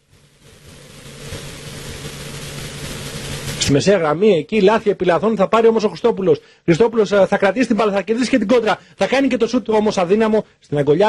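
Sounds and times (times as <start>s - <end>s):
low steady hum: 0.0s - 4.5s
steady outdoor hiss: 0.0s - 10.4s.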